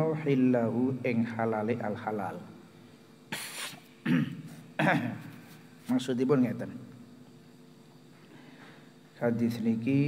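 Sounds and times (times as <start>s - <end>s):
man coughing: 3.3s - 5.4s.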